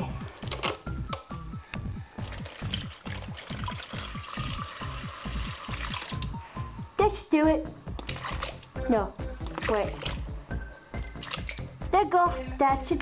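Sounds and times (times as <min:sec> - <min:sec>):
liquid pouring into bowl: 0:02.2 - 0:06.4, 0:07.9 - 0:08.8, 0:09.4 - 0:10.4, 0:11.0 - 0:11.7
electronic pop music: 0:03.8 - 0:13.0.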